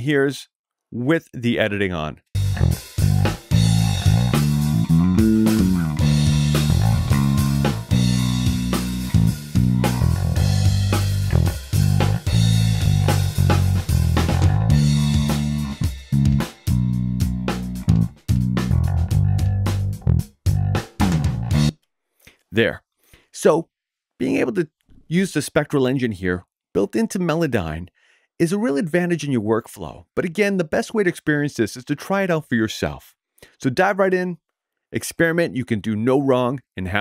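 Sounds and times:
drum kit: 2.4s - 21.7s
electric bass guitar: 2.4s - 21.8s.

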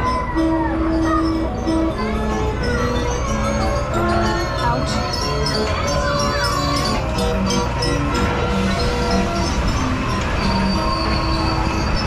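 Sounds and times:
carousel organ music: 0.0s - 12.0s
low rumble of turning ride: 0.0s - 12.0s.

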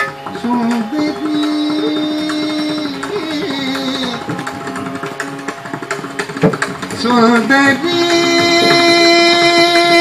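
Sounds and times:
hand drum strokes: 0.0s - 10.0s.

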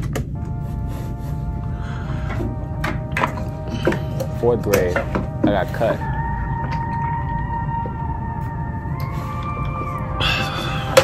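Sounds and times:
low bass rumble: 1.4s - 11.0s.

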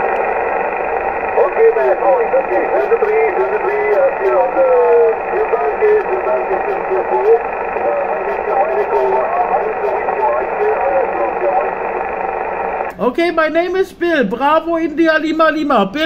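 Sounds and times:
radio band hiss: 0.0s - 13.4s
weak voice over radio: 1.4s - 12.1s.

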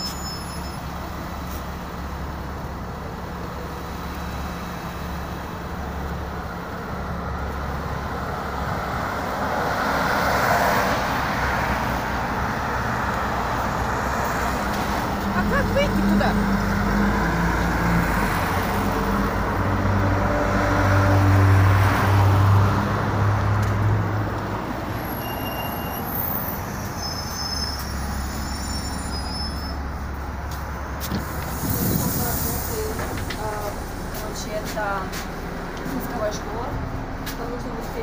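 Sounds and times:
bus diesel engine running: 0.0s - 38.0s.

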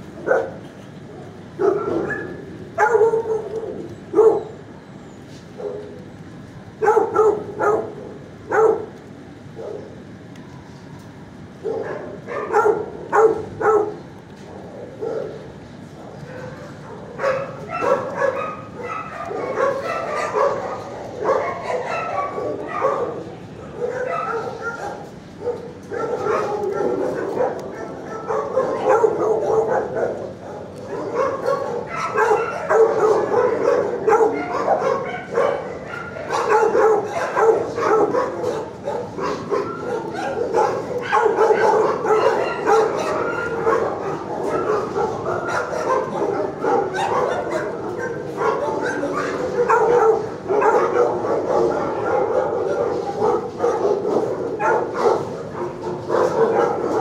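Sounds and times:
dogs barking: 0.0s - 4.8s, 5.5s - 10.2s, 11.3s - 57.0s.

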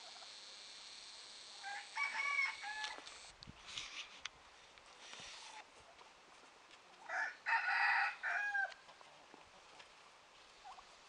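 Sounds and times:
faint steady hiss: 0.0s - 11.0s
rooster crowing: 1.6s - 3.1s, 7.1s - 8.8s.

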